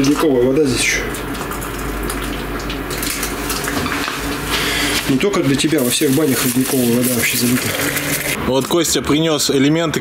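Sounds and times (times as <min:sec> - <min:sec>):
water pouring from kettle: 0:05.7 - 0:08.4.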